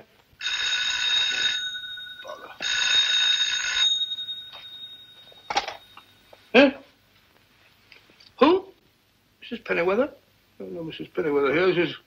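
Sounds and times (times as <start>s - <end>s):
telephone bell ringing: 0.4s - 6.4s.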